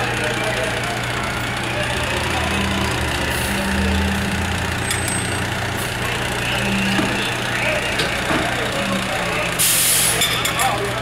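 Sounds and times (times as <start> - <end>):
fire engine running: 0.0 - 11.0.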